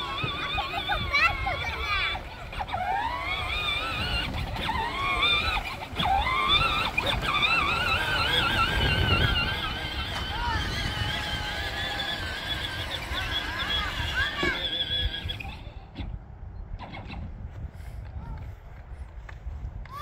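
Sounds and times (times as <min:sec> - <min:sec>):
tyres rumbling on grass: 0:00.0 - 0:15.6
electric motor whining: 0:00.0 - 0:16.0.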